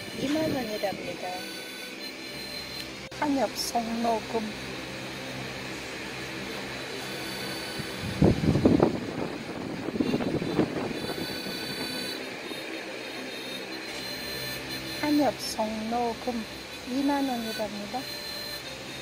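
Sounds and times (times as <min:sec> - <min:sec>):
electric fan humming: 0:00.0 - 0:19.0
air gusts buffeting microphone: 0:05.6 - 0:13.0.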